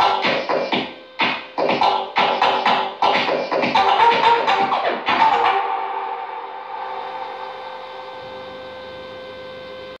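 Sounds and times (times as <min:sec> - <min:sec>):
sustained synth chord: 0:00.0 - 0:10.0.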